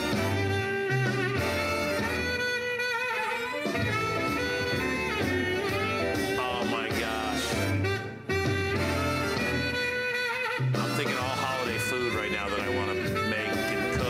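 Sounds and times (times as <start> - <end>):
bass line: 0.0 - 2.8, 3.6 - 14.0
music from a stereo: 0.0 - 14.0.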